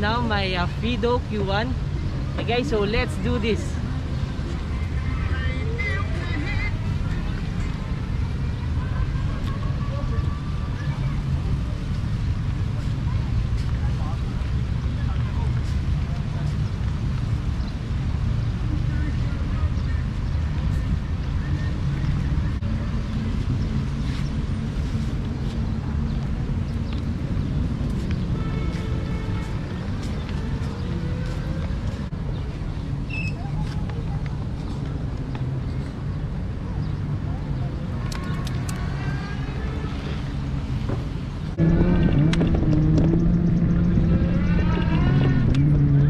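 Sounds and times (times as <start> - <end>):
wind buffeting microphone: 37.6 - 46.0.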